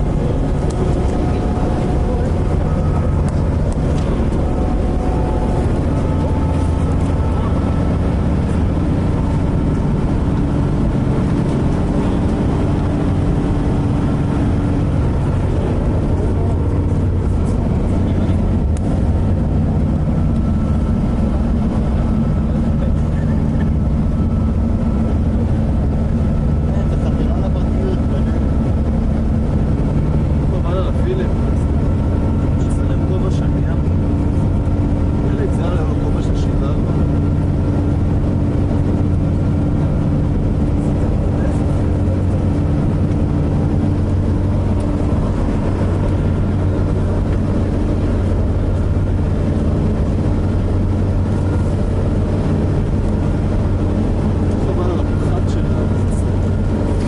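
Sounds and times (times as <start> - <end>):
bus engine drone: 0.0 - 57.0
road noise: 0.0 - 57.0.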